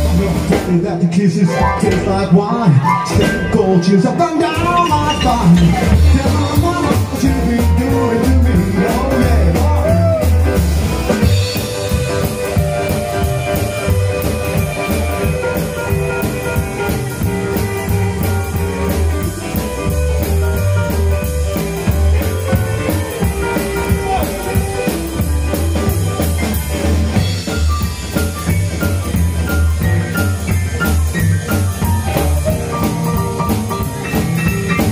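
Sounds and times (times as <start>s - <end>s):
drum kit: 0.0s - 34.9s
upright bass: 0.0s - 34.9s
electric guitar: 1.4s - 34.9s
electric piano: 1.5s - 34.9s.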